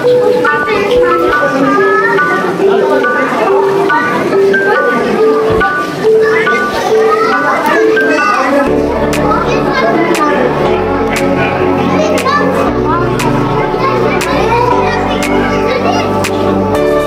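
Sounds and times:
children chattering and calling: 0:00.0 - 0:17.0
background music with beat: 0:08.7 - 0:17.0.

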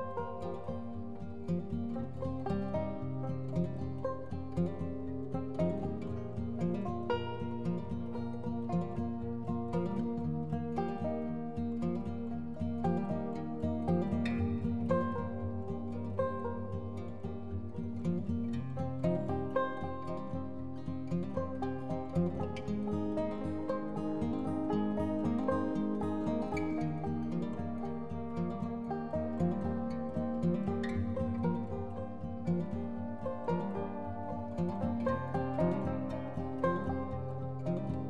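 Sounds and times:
plucked string music: 0:00.0 - 0:38.0.

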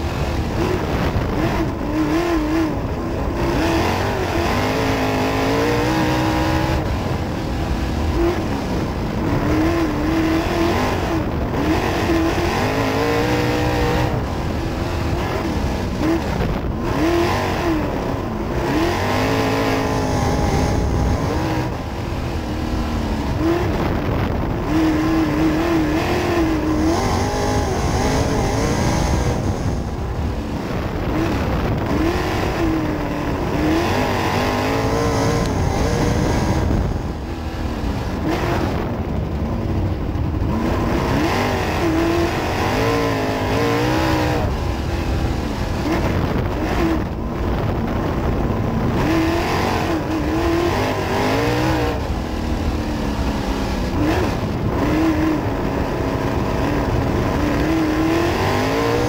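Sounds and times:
race car engine revving: 0:00.0 - 0:59.0
wind and road noise: 0:00.0 - 0:59.0.

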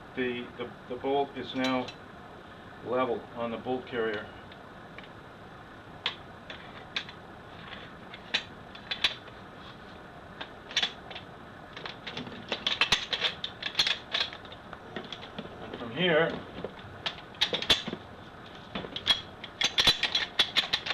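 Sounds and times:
shotgun parts clicking and rattling: 0:06.0 - 0:09.3, 0:10.4 - 0:18.0, 0:18.7 - 0:20.9.

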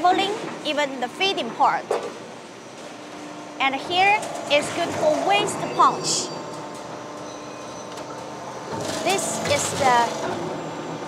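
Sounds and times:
machine hum: 0:00.0 - 0:11.0.

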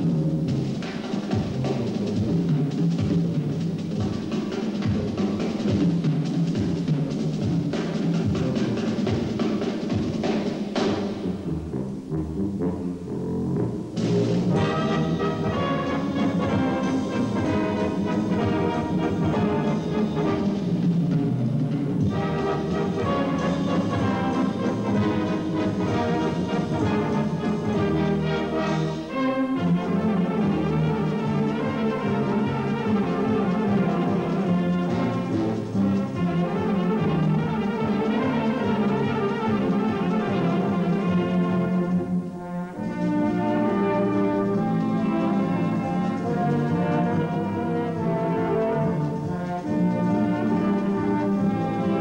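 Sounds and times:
brass band playing: 0:00.0 - 0:52.0.

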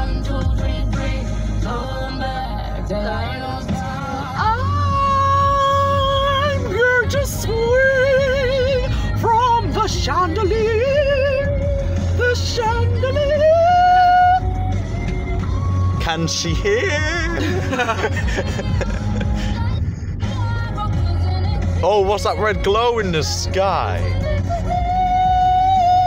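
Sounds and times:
moving car rumble: 0:00.0 - 0:26.0
song on car radio: 0:00.0 - 0:26.0.

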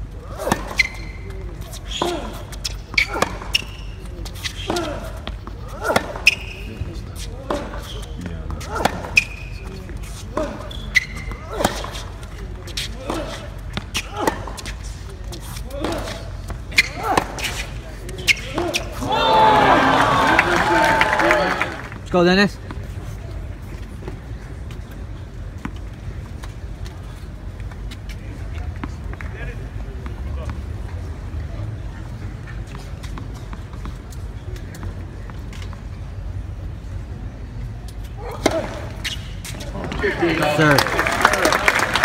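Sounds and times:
shoe squeaks on hard court: 0:00.3 - 0:19.1, 0:37.8 - 0:40.0
tennis ball bouncing: 0:02.0 - 0:12.1
crowd cheering and applauding: 0:19.1 - 0:22.0, 0:40.0 - 0:42.0.

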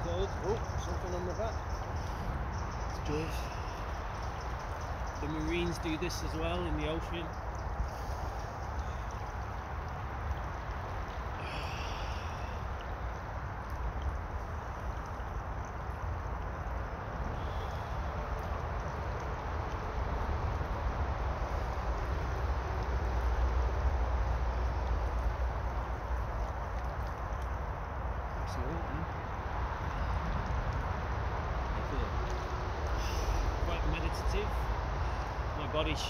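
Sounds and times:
stream water flowing: 0:00.0 - 0:36.0.

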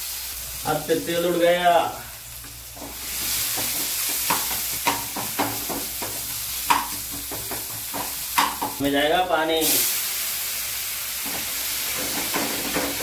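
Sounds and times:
food sizzling in hot oil: 0:00.0 - 0:13.0.

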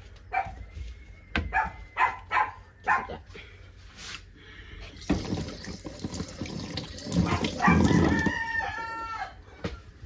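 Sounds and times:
dog barking: 0:01.5 - 0:03.2, 0:07.2 - 0:08.0.

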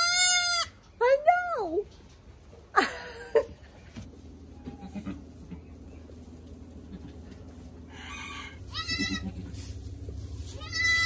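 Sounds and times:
goat kid bleating: 0:00.0 - 0:00.8, 0:04.6 - 0:05.4, 0:08.2 - 0:09.7, 0:10.5 - 0:11.0.

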